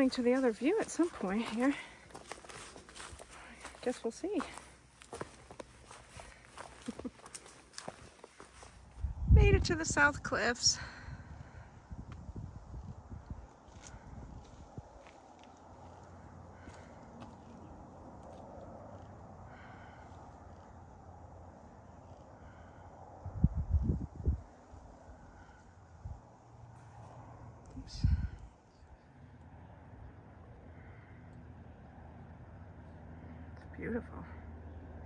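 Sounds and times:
wind buffeting microphone: 0:05.8 - 0:15.2, 0:22.1 - 0:26.4, 0:27.3 - 0:28.6.

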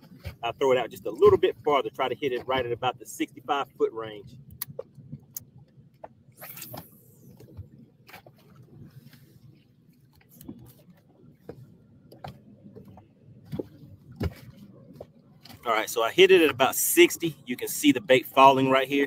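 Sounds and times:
fishing line hissing out: 0:06.4 - 0:07.3.

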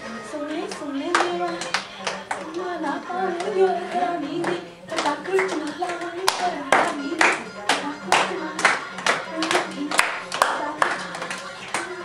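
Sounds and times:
girls clapping in unison: 0:00.7 - 0:02.7, 0:04.4 - 0:12.0.

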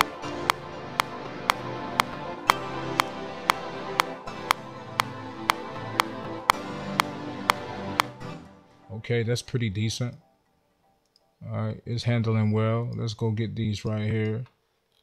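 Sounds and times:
sharp metronome tick: 0:00.0 - 0:08.1
layered synthesizer chords and pads: 0:00.0 - 0:08.8.

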